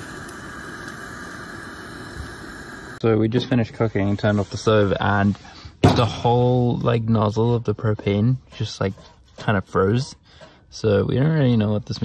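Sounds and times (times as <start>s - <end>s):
camp stove hissing: 0.0s - 6.7s.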